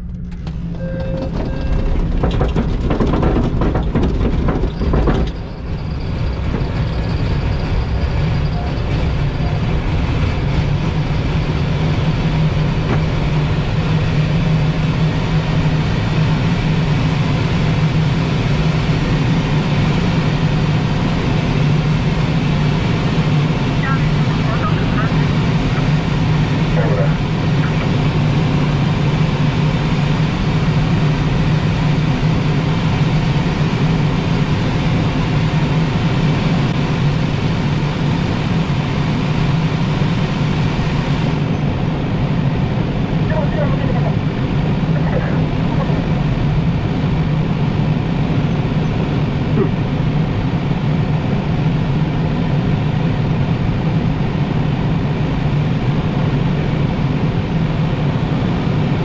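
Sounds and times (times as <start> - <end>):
knocks and bumps: 0.0 - 5.7
plane engine drone: 0.0 - 59.0.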